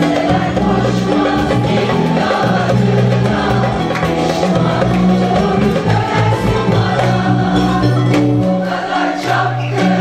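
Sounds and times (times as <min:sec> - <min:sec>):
choir singing pop song: 0:00.0 - 0:10.0.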